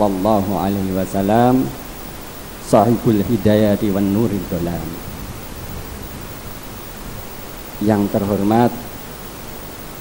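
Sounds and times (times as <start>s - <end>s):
man speaking over loudspeaker: 0.0s - 1.8s, 2.6s - 5.0s, 7.8s - 8.9s
steady background hiss: 0.0s - 10.0s.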